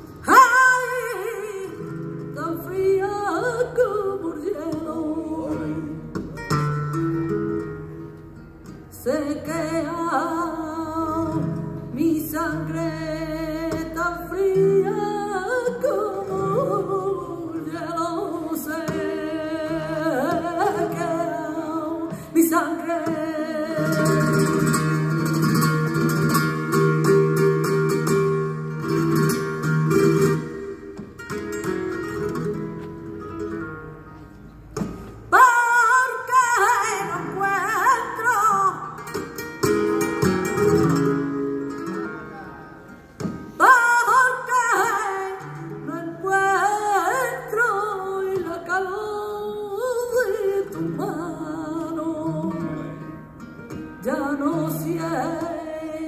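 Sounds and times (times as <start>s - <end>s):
woman singing flamenco: 0.0s - 42.3s, 43.1s - 56.0s
flamenco guitar: 0.0s - 56.0s.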